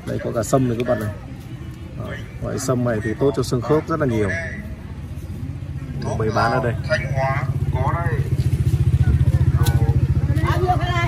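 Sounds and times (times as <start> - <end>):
people talking: 0.0 - 11.0
motorcycle engine running: 5.5 - 11.0.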